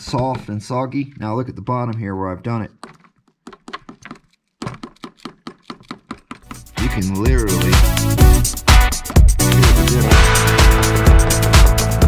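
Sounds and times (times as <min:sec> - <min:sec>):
fingers tapping on plastic: 0:02.7 - 0:06.8.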